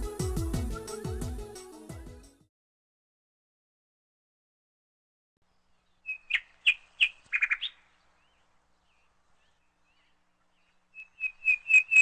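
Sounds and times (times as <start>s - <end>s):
bird chirping: 5.4s - 12.0s.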